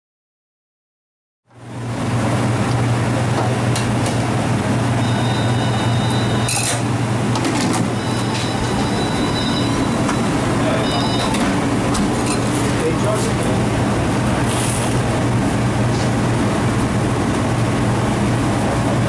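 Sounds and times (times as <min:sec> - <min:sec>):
kitchen machinery hum: 0:01.5 - 0:19.0.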